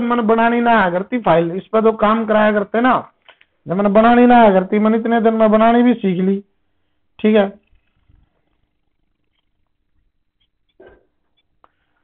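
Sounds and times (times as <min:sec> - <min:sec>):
faint steady hum: 0:05.8 - 0:12.0.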